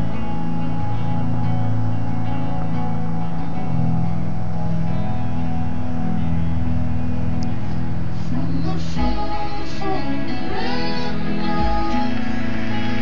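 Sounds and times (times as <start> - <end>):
guitar-backed instrumental music: 0.0 - 13.0.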